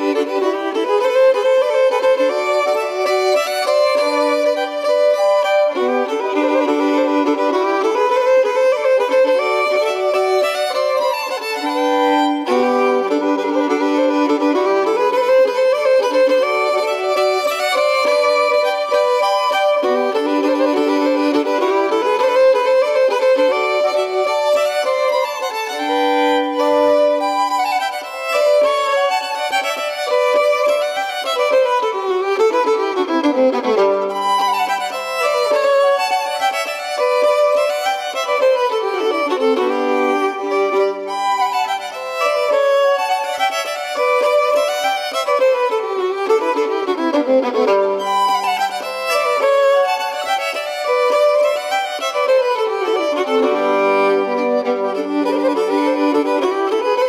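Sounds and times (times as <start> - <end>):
folk fiddle dance tune: 0.0 - 57.0.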